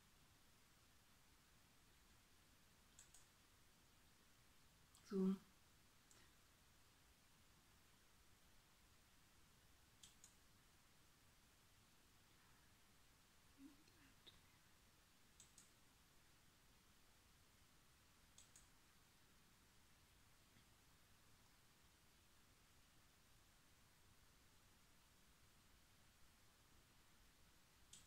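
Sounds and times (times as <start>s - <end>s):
faint quick clicks: 2.9s - 3.4s, 10.0s - 10.4s, 15.4s - 15.8s, 18.3s - 18.7s.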